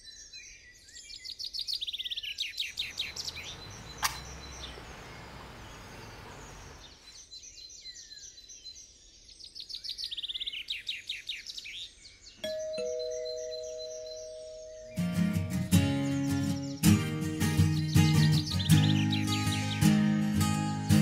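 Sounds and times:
birds chirping: 0:00.7 - 0:21.0
two-tone doorbell chime: 0:12.4 - 0:15.6.

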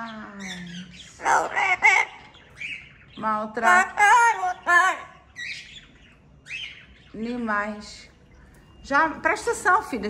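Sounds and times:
parrot calls: 0:00.0 - 0:07.0.

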